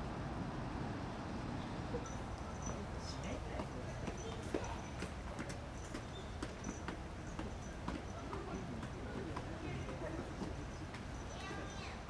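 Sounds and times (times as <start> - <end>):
steady background noise: 0.0 - 12.0
faint voices: 1.9 - 12.0.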